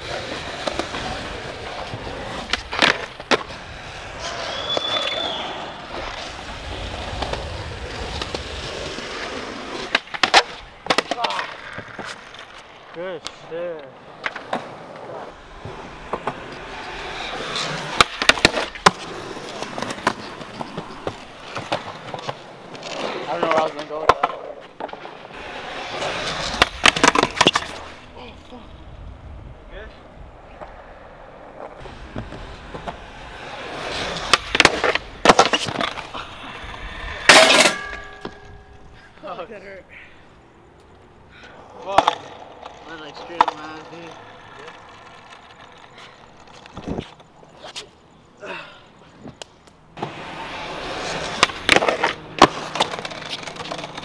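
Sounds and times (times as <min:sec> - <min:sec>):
skateboard clacks: 0:00.0 - 0:15.0, 0:15.6 - 0:27.9, 0:30.6 - 0:38.8, 0:41.6 - 0:47.9, 0:49.3 - 0:54.0
skateboard wheels rolling on asphalt: 0:00.0 - 0:54.0.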